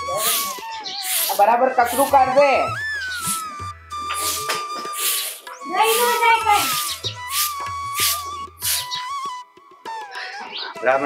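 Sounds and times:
broom sweeping ground: 0:00.0 - 0:02.3, 0:03.2 - 0:09.0.

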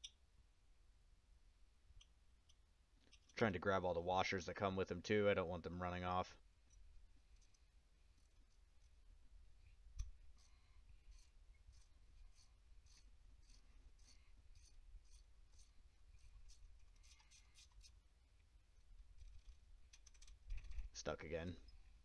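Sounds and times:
light metallic clicks of tools: 0:02.0 - 0:03.4.

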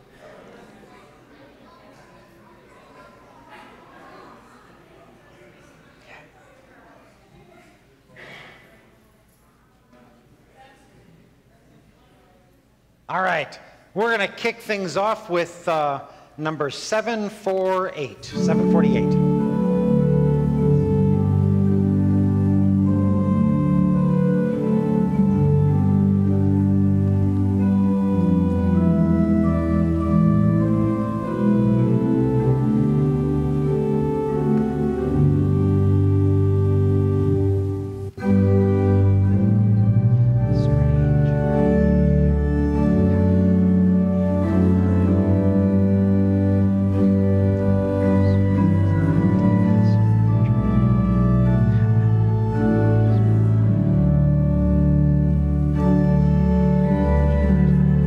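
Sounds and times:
church organ playing hymn chords: 0:13.1 - 0:58.0.

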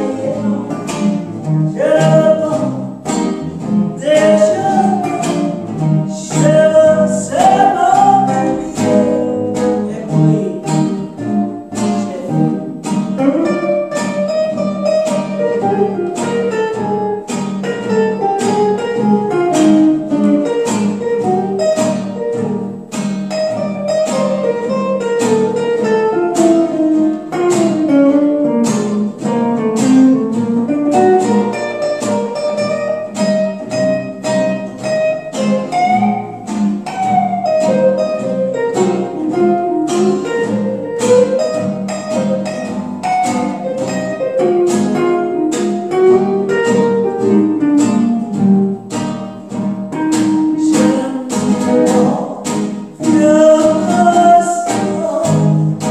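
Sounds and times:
acoustic guitar strumming chords: 0:00.0 - 0:55.9
electric guitar lead melody: 0:00.0 - 0:55.9.

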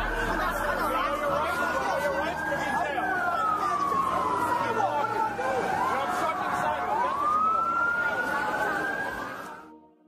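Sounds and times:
voices talking: 0:00.0 - 0:09.2
siren wailing: 0:00.0 - 0:09.8.

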